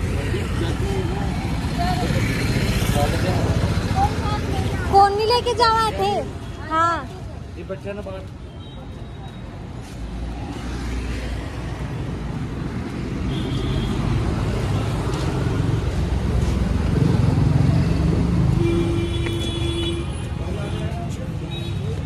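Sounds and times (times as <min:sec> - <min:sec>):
low rumble of passing vehicles: 0:00.0 - 0:08.3, 0:09.8 - 0:22.0.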